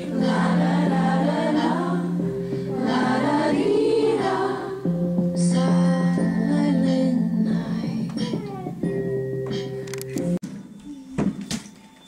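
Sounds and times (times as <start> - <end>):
choir singing long notes: 0.0 - 6.2.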